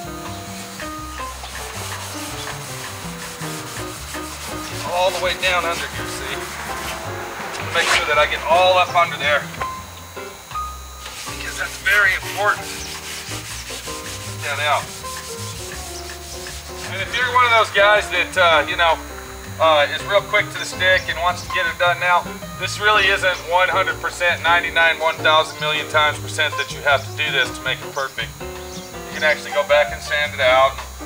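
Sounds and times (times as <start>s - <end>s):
scouring pad scrubbing wet steel: 0.0s - 9.5s, 11.0s - 18.9s
faint background music: 0.0s - 31.0s.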